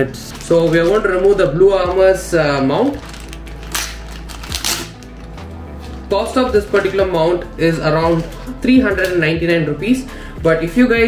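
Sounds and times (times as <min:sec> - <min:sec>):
quiet background music: 0:00.0 - 0:11.0
plastic packaging crinkling and tearing: 0:00.3 - 0:01.9, 0:02.6 - 0:06.9.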